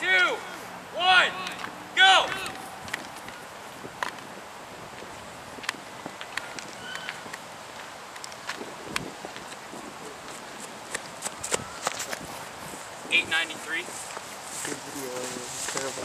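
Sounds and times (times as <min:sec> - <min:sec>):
steady outdoor hiss: 0:00.0 - 0:16.0
footsteps on grass: 0:01.6 - 0:16.0.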